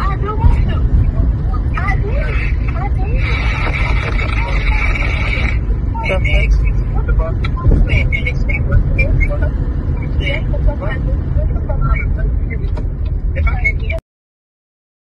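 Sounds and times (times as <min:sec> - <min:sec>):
car cabin rumble: 0:00.0 - 0:14.0
muffled voices: 0:00.0 - 0:14.0
loud held sound: 0:01.1 - 0:06.0.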